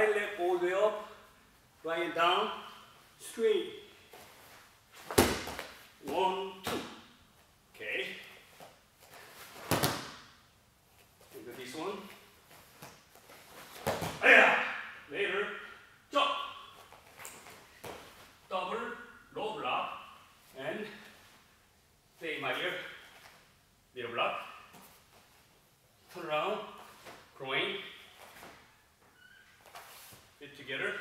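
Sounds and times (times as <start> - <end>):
feet landing on a mat: 4.1 - 5.9, 9.0 - 10.3, 12.5 - 14.2
man's voice bursts: 14.2 - 16.6.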